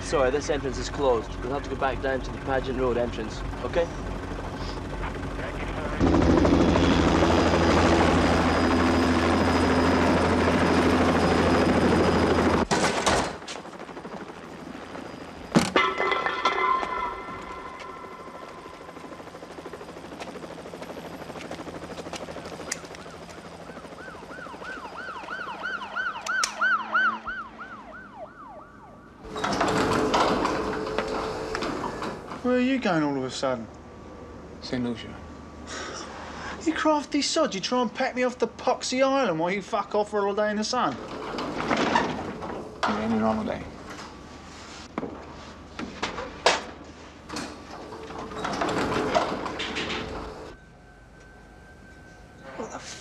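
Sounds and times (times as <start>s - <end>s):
police siren yelping: 22.7s - 29.4s.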